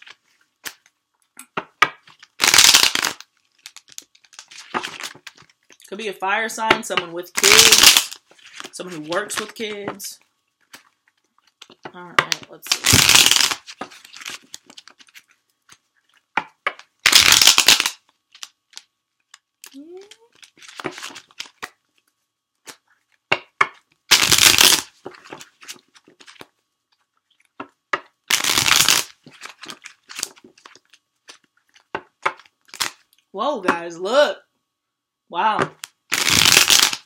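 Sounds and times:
cards riffle shuffling: 0:02.1 - 0:05.6, 0:07.4 - 0:10.0, 0:10.6 - 0:16.3, 0:19.3 - 0:21.7, 0:24.1 - 0:26.5, 0:28.3 - 0:31.9.

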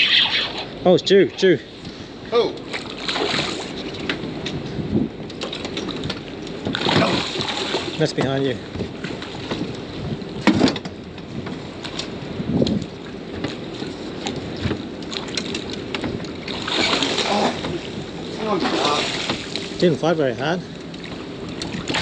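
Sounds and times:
fish splashing in water: 0:02.8 - 0:03.8, 0:06.7 - 0:08.0, 0:16.4 - 0:17.9, 0:18.5 - 0:19.8, 0:21.0 - 0:22.0
wind on microphone: 0:04.5 - 0:05.2, 0:12.2 - 0:13.1.

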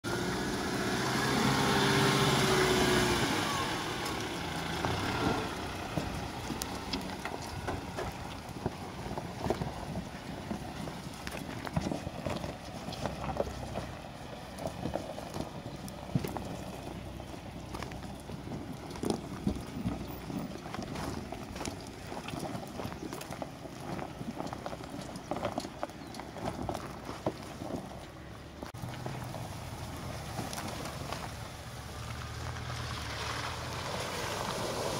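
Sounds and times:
car engine running: 0:00.0 - 0:34.9
stones crunching under tyres: 0:00.1 - 0:34.9.

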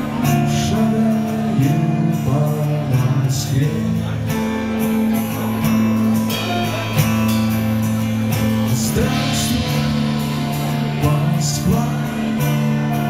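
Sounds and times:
acoustic guitar strumming: 0:00.0 - 0:13.0
held low notes: 0:00.0 - 0:13.0.

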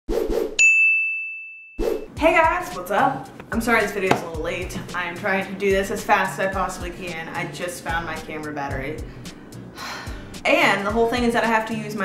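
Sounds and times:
bright bell-like ding: 0:00.6 - 0:01.8
soft hits: 0:03.3 - 0:04.4.

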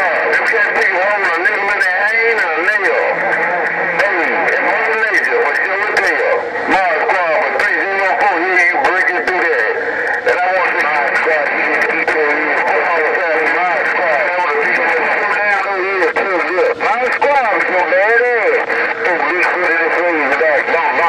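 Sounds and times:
garbled radio voices: 0:00.0 - 0:21.0
steady radio hiss: 0:00.0 - 0:21.0.

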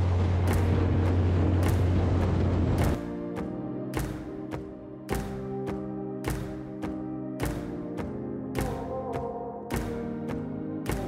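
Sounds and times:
outboard motor humming: 0:00.0 - 0:03.0
wind: 0:00.0 - 0:03.0
rushing water: 0:00.0 - 0:03.1
water slapping boat hull: 0:00.0 - 0:03.1.

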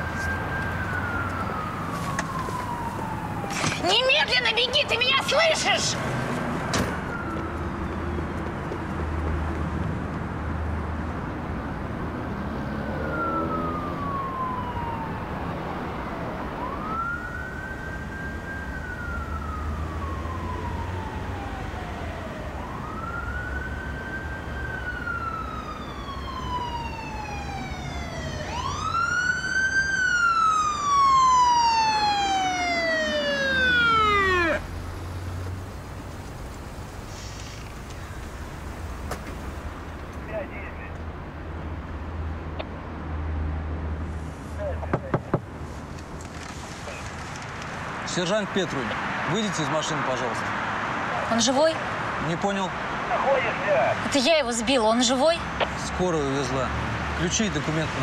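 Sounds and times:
police siren wailing: 0:00.0 - 0:08.4, 0:11.8 - 0:36.8, 0:47.9 - 0:58.0
car engine rumble: 0:28.1 - 0:48.2.

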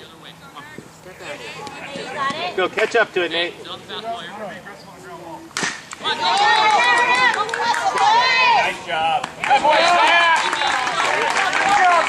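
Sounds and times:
bat cracking baseball: 0:05.6 - 0:07.4
spectators yelling and cheering: 0:06.0 - 0:12.0.

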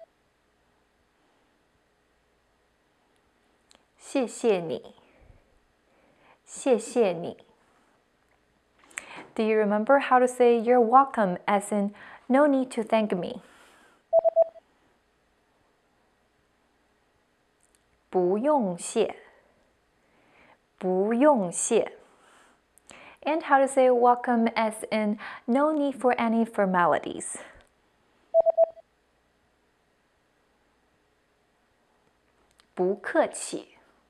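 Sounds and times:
quick electronic beeps: 0:14.1 - 0:14.6, 0:28.4 - 0:28.8.

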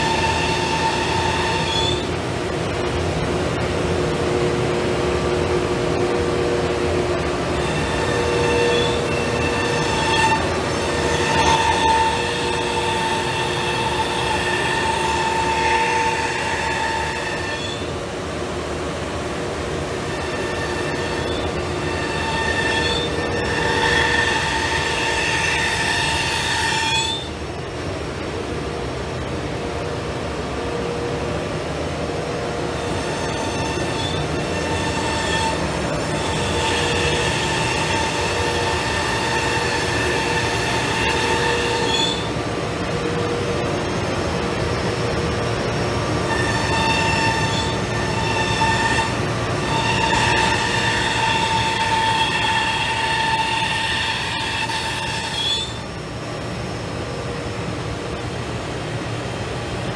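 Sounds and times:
router spindle high whine: 0:00.0 - 0:59.9.

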